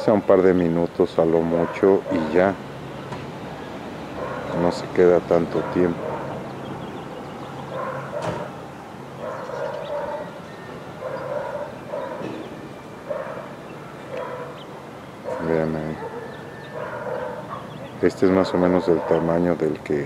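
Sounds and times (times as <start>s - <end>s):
dog barking: 1.5s - 2.4s, 4.2s - 4.8s, 5.4s - 6.4s, 7.7s - 8.6s, 9.2s - 12.4s, 13.0s - 19.5s.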